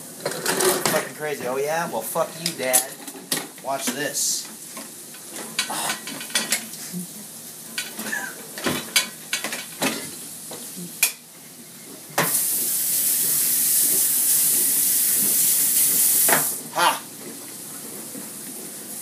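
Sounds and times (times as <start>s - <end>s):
dishes and cutlery clattering: 0.2s - 1.1s, 5.3s - 6.7s, 7.7s - 10.2s
tap water running into steel sink: 12.2s - 16.6s.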